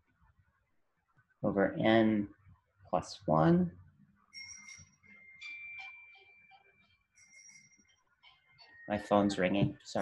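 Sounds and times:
mobile phone ringtone melody: 4.3 - 9.3.

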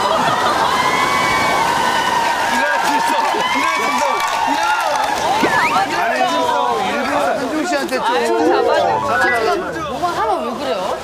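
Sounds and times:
people talking and exclaiming: 4.8 - 10.9.

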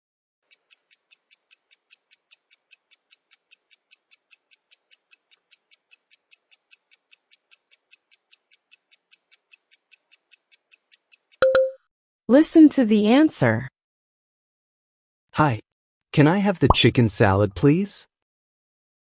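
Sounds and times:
timer ticking quickly: 0.4 - 11.7.

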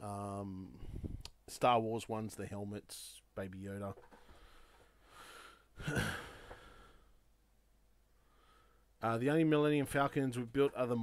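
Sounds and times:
man exhaling: 4.3 - 7.2
man laughing: 5.8 - 6.4.

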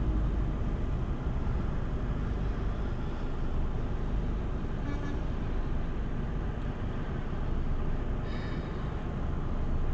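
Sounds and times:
car engine idling: 0.0 - 9.9
traffic crossing intersection: 0.0 - 9.9.

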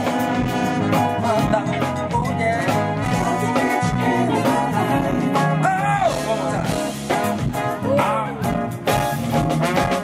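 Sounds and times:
funk band playing: 0.0 - 10.0
person singing: 0.7 - 8.7.

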